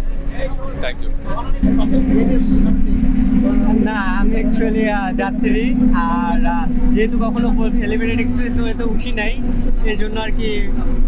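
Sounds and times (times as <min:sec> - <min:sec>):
bus engine drone: 0:00.0 - 0:11.0.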